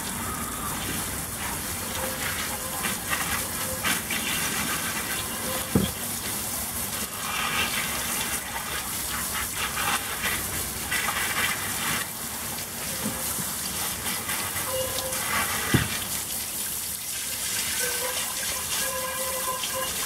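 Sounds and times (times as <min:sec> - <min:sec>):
hose spray hissing on metal pot: 0:00.0 - 0:20.0
water splashing on plastic tarp: 0:00.6 - 0:20.0
thump: 0:15.7 - 0:16.0.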